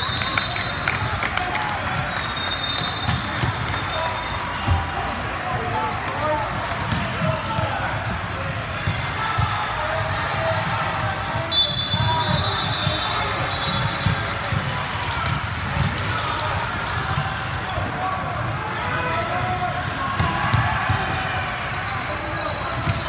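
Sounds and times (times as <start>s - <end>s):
referee's whistle: 0.0s - 1.0s, 1.9s - 4.8s, 11.5s - 14.3s.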